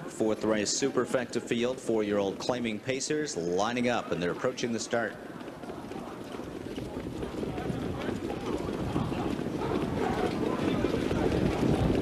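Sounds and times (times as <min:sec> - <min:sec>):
horse hoofbeats: 0:00.0 - 0:12.0.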